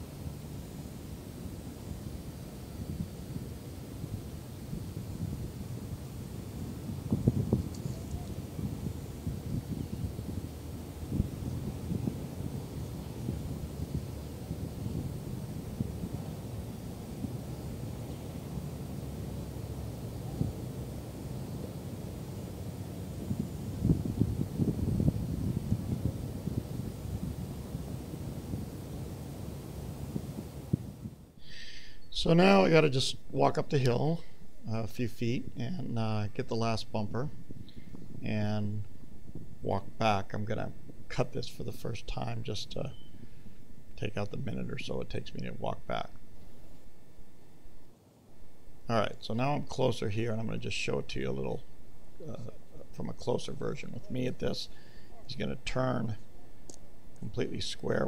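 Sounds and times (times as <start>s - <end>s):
wind rumble on microphone: 0.0s - 31.4s, 33.6s - 46.2s.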